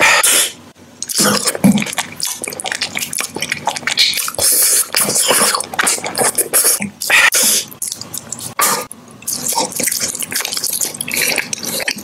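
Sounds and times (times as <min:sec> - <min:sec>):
wet chewing mouth sounds: 0:01.0 - 0:12.0.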